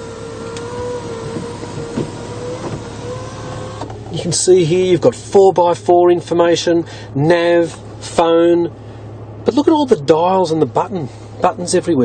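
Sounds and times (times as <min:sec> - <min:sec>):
sunroof motor whining: 0:00.0 - 0:04.5.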